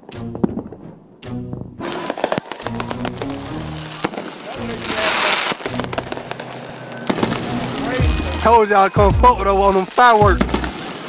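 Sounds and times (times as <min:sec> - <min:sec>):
music with low notes: 0:00.0 - 0:01.8, 0:07.1 - 0:10.8
firework bangs and crackles: 0:01.8 - 0:11.0.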